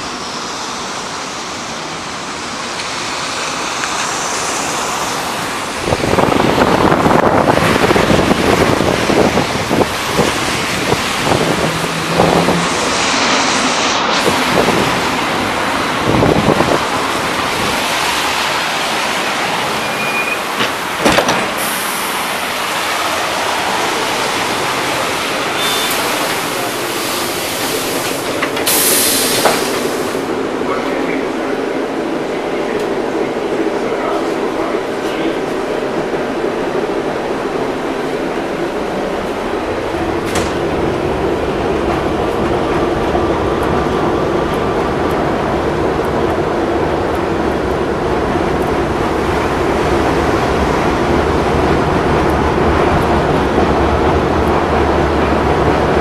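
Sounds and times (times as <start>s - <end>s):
tram hissing: 0.0s - 56.0s
tram motor hum on rails: 0.0s - 56.0s
wind on microphone: 5.7s - 17.8s.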